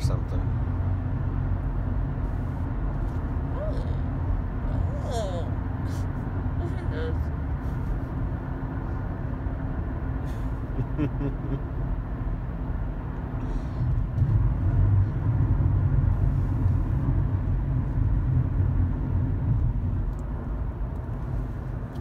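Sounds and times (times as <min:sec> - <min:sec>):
car cabin road rumble: 0:00.0 - 0:22.0.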